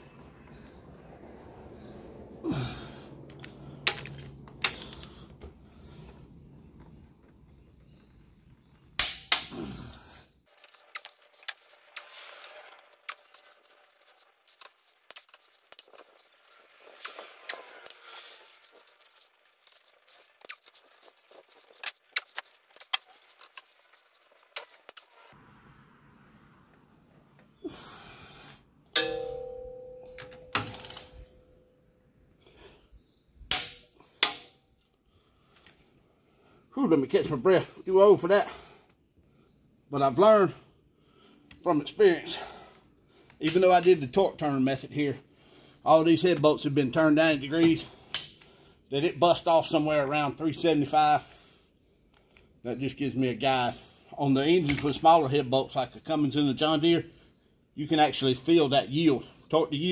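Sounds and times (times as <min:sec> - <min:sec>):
sharp metal knocks: 0:09.0 - 0:09.5, 0:28.9 - 0:31.4
ringing metal clang: 0:28.9 - 0:31.9.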